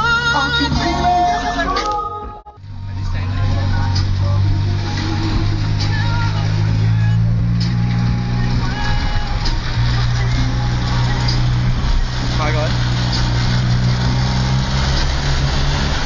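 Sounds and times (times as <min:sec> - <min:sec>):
vehicle engine droning: 0:00.0 - 0:16.0
road and wind noise: 0:02.6 - 0:16.0.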